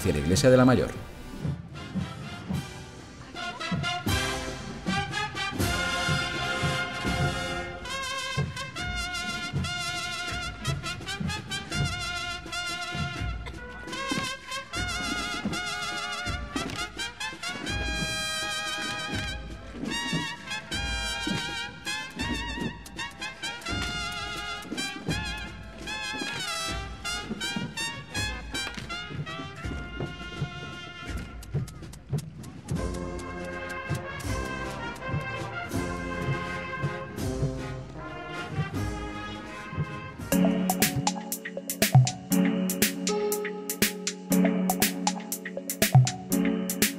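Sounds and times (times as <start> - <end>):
bugles playing a march melody: 1.6 - 31.5, 32.8 - 41.7
steady drum beat: 40.3 - 46.9.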